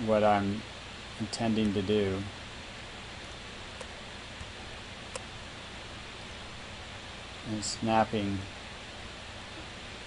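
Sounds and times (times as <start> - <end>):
microphone hiss: 0.0 - 10.0
computer mouse clicks: 3.3 - 4.5.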